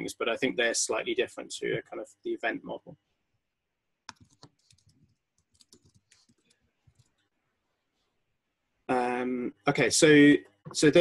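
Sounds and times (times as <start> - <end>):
keyboard typing: 4.1 - 7.2.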